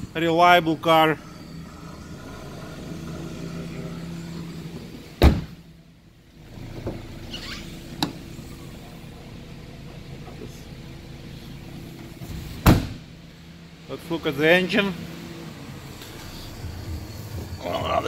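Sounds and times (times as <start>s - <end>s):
steady low hum: 0.0s - 18.0s
car doors thudding shut: 5.2s - 5.7s, 12.2s - 13.1s.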